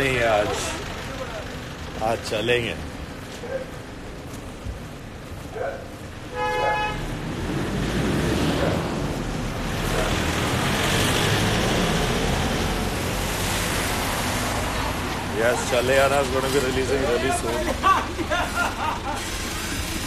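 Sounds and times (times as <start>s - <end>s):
passing traffic rush: 0.0s - 20.0s
vehicle horn toot: 6.3s - 7.1s.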